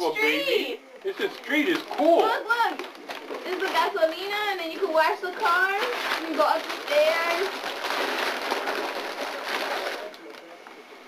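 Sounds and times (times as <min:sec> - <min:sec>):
plastic bag rustling: 0:01.2 - 0:10.6
wrapping paper crinkling: 0:01.2 - 0:10.8.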